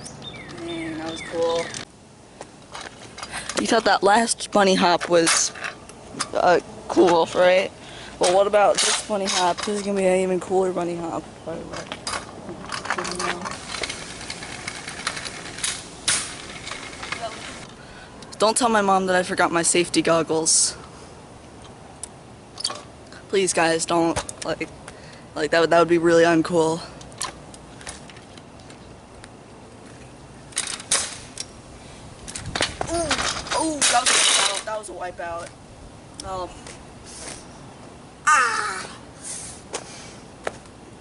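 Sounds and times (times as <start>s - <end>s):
scooter wheels rolling on asphalt: 0.0s - 17.8s
scooter rolling over asphalt: 11.5s - 17.7s
person yelling: 38.2s - 39.0s.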